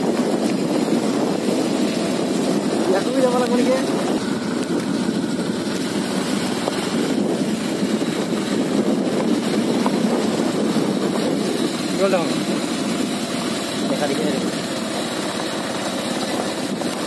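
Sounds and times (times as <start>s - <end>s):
vehicle on dirt road: 0.0s - 17.0s.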